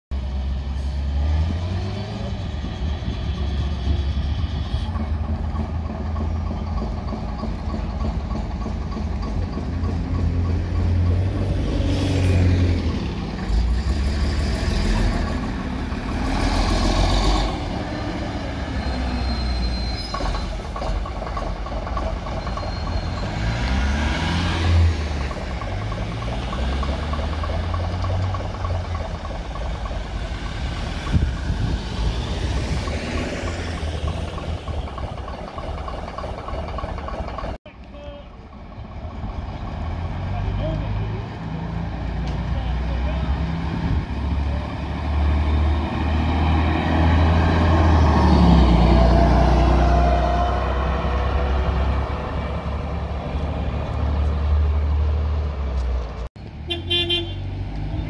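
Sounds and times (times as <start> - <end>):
bus diesel engine accelerating: 0.1 - 58.0.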